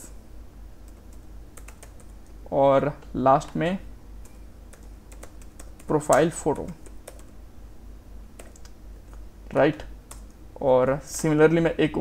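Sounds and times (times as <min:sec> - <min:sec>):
keyboard keystroke clicks: 0:08.4 - 0:09.2.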